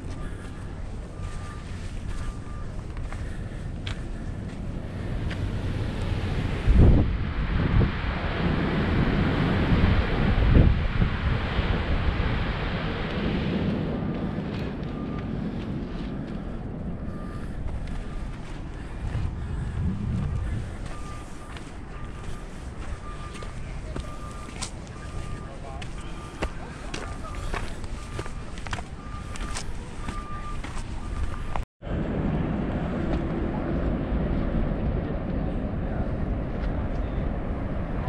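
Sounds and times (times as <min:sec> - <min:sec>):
wind blowing across microphone: 0:00.0 - 0:38.0
low buffeting thumps: 0:13.9 - 0:38.0.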